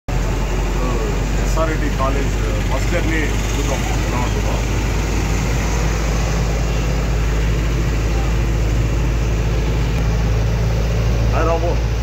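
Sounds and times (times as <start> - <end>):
bus engine droning: 0.1 - 12.0
voices talking: 0.2 - 12.0.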